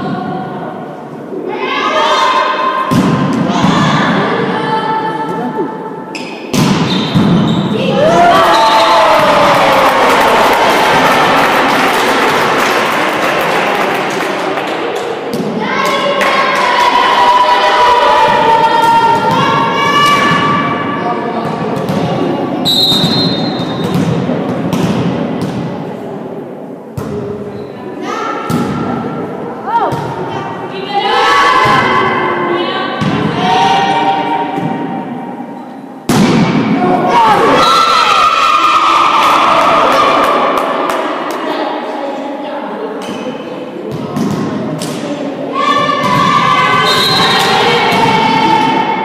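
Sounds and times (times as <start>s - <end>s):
crowd noise: 0.0s - 49.0s
volleyball struck with thump: 6.5s - 7.5s
girls shouting and cheering: 7.8s - 11.6s, 15.6s - 20.7s, 45.5s - 49.0s
referee's whistle blast: 22.6s - 23.8s, 46.8s - 47.6s.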